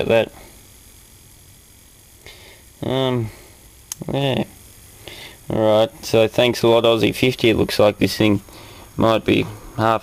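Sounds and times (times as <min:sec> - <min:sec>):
television high-pitched whine: 0:00.0 - 0:10.0.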